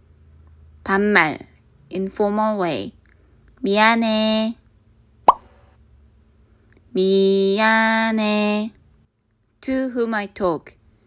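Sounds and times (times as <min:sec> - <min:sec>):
short upward blip: 0:05.3 - 0:05.6.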